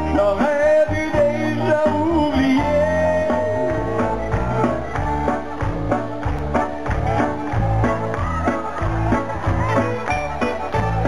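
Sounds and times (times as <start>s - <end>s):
man singing into a microphone: 0.0s - 4.2s
drums: 0.0s - 11.0s
electric bass guitar: 0.0s - 11.0s.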